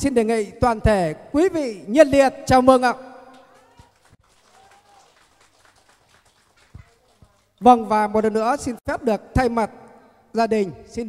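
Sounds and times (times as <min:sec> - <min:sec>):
small crowd clapping: 0:03.3 - 0:07.6.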